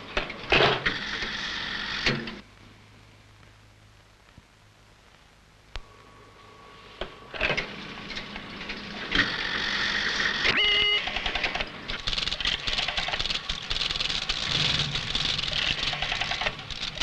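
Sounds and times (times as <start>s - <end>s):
short telephone tone: 10.5s - 11.2s
rotary telephone dialling: 10.8s - 17.0s
telephone exchange relays clicking: 11.0s - 17.0s.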